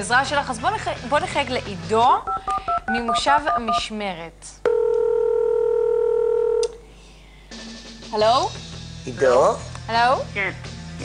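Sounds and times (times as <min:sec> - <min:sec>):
telephone ringback tone: 0:02.2 - 0:04.0, 0:04.6 - 0:06.7.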